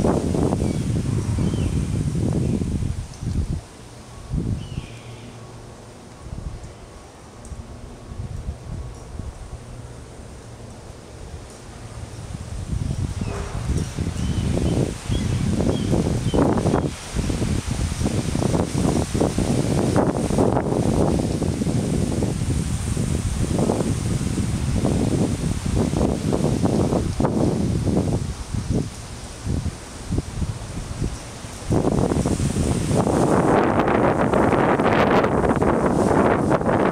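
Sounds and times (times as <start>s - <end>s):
leaves rustling: 0.0s - 36.9s
wind gusting on microphone: 0.0s - 36.9s.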